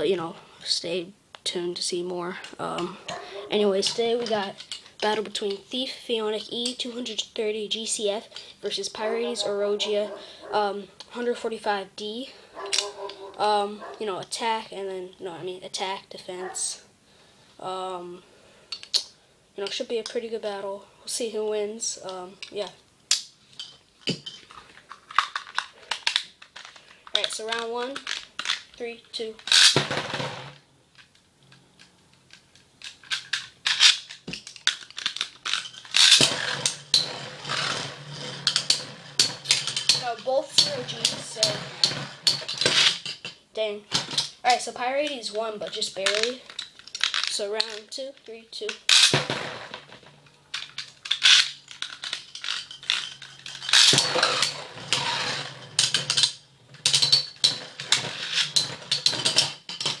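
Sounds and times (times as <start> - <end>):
spinning tops clashing clicks: 29.4 - 60.0
spinning tops clashing: 33.0 - 43.3.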